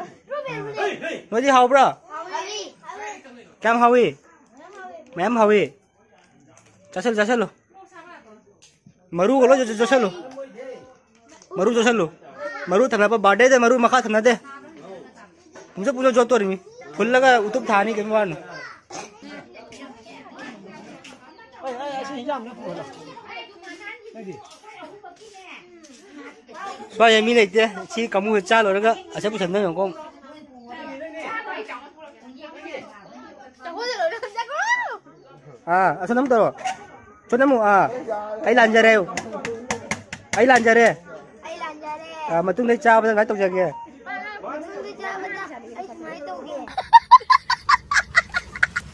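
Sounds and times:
children chattering: 0.0s - 48.9s.

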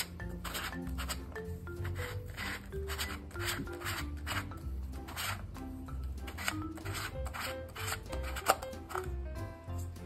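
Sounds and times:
light piano music: 0.0s - 10.0s
rubbing and scraping of plastic ball: 0.0s - 10.0s.

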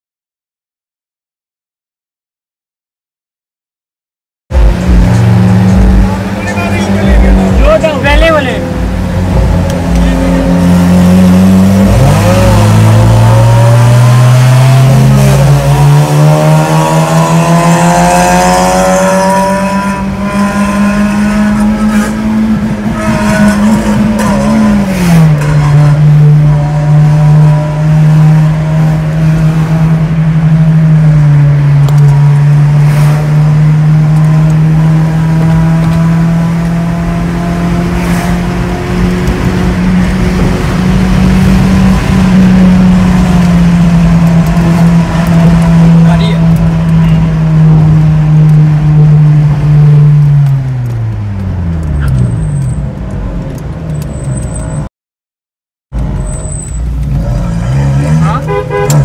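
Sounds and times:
car engine accelerating hard: 4.5s - 54.8s, 56.0s - 59.0s.

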